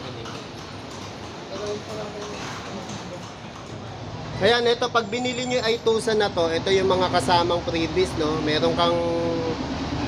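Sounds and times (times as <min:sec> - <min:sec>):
murmur of room noise: 0:00.0 - 0:10.0.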